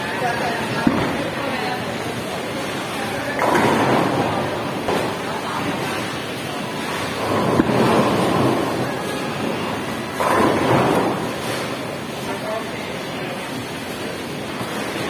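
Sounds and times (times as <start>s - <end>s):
steady alley rumble: 0.0s - 15.0s
bowling balls rolling: 0.1s - 15.0s
bowling pins crashing: 6.9s - 11.8s.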